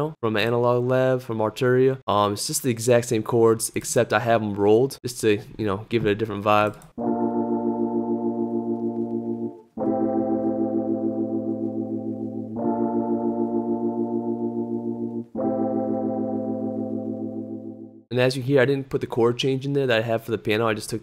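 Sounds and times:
electric piano pulsing chords: 7.0s - 18.1s.

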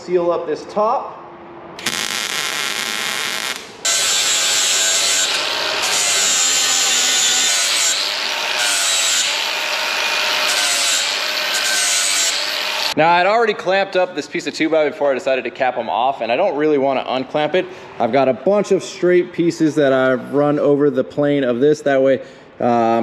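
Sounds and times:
welder crackling hiss: 1.8s - 5.3s
angle grinder grinding steel: 1.8s - 13.0s.

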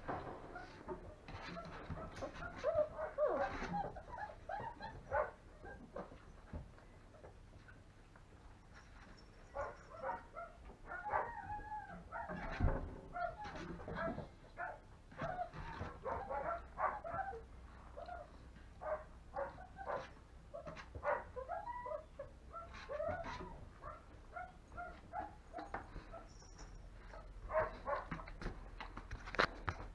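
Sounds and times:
puppies whining and yipping: 0.6s - 6.6s, 9.5s - 14.3s, 15.1s - 18.4s, 19.4s - 28.0s.

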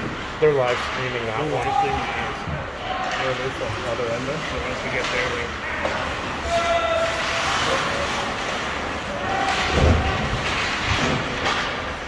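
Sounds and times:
skates and sticks on ice: 0.0s - 12.0s.

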